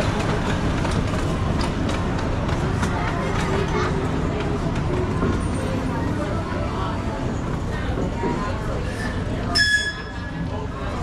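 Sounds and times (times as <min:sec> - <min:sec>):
miniature train rumbling on track: 0:00.0 - 0:11.0
people talking: 0:00.0 - 0:11.0.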